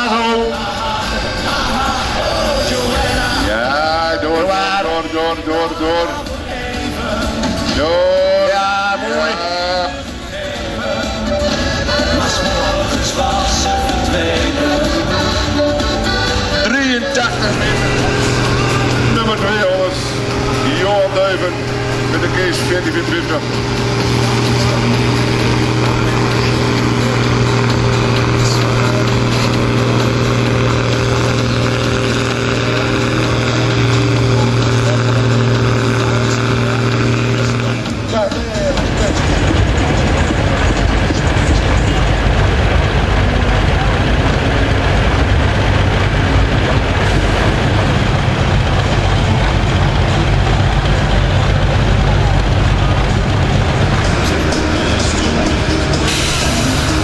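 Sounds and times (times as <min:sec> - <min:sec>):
tractor diesel engine under load: 0:00.0 - 0:57.0
tractor engines rumbling: 0:00.0 - 0:57.0.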